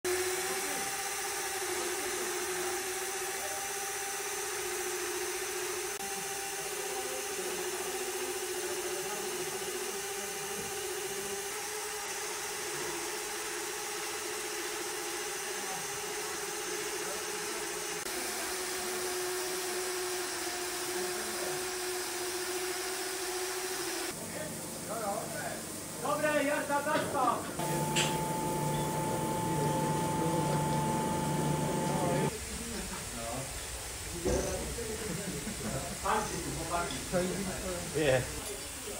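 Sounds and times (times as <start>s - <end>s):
pneumatic rock drill running: 0.1s - 23.6s, 27.6s - 32.3s.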